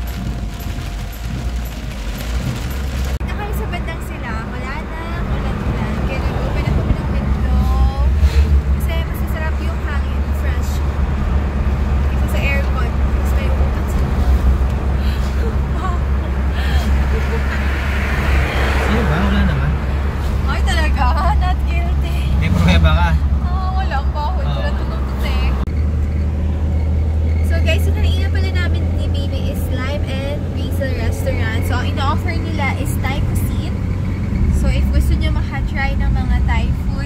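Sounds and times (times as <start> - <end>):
car engine and tyres rumbling: 0.0 - 37.0
voices talking: 3.2 - 11.1, 11.8 - 25.7, 27.3 - 37.0.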